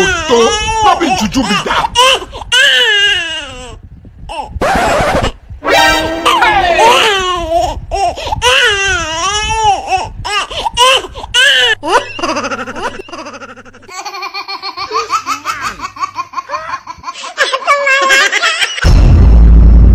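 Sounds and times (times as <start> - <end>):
high-pitched laughter: 11.8 - 18.9.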